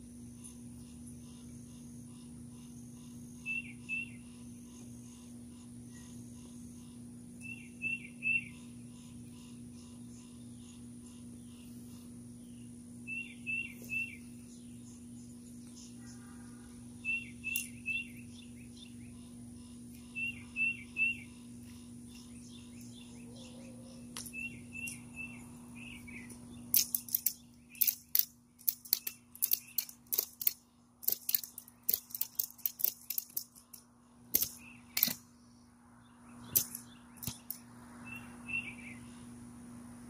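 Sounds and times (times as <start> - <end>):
steady low hum: 0.0 - 40.0
bird chirping: 0.2 - 39.4
ratchet strap clicking: 26.3 - 35.2, 36.5 - 37.6.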